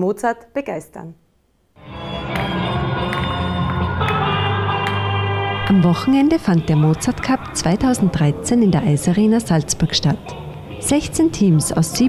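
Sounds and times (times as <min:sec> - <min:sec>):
music with held chords: 0:01.8 - 0:07.6
sharp percussive hits: 0:02.2 - 0:05.9.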